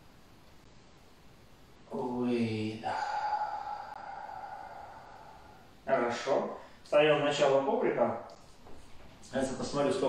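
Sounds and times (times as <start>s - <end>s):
man chanting: 1.9s - 6.6s.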